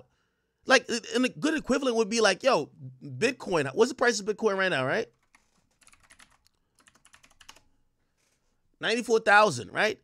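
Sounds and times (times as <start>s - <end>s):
typing on computer keyboard: 5.1s - 7.7s.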